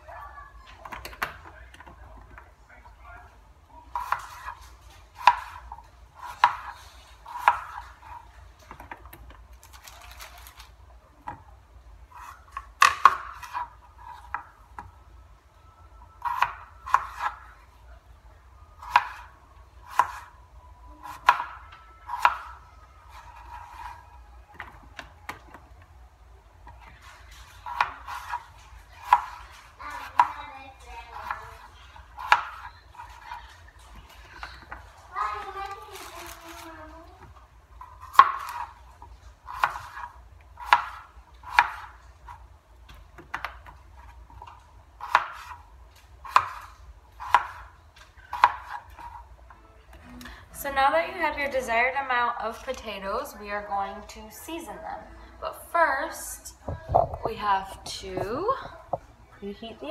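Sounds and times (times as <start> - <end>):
knife knocking on cutting board: 56.7 - 57.5.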